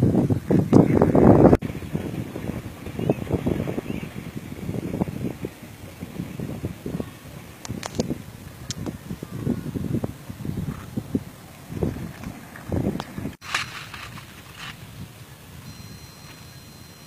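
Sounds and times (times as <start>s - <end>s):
wind buffeting microphone: 0.0s - 17.0s
faint sharp clicks: 7.6s - 9.0s.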